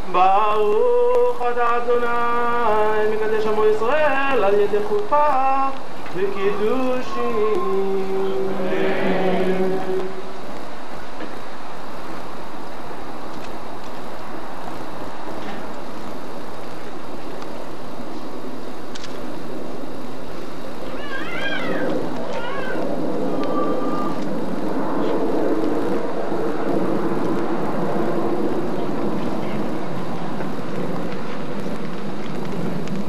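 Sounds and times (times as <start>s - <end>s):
microphone hiss: 0.0s - 33.0s
short high wavering cries: 7.0s - 10.3s.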